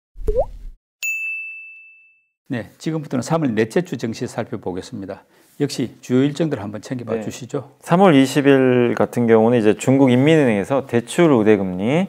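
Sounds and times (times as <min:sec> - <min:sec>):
short pop with rising bloop: 0:00.2 - 0:00.8
bright bell-like ding: 0:01.0 - 0:02.3.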